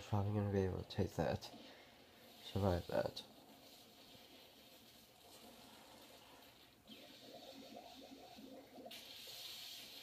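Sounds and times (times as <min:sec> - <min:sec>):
steady hiss: 0:00.1 - 0:10.0.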